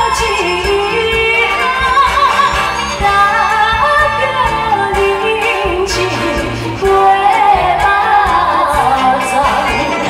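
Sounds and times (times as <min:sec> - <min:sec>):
backing music: 0:00.0 - 0:10.0
woman singing into microphone: 0:00.0 - 0:10.0.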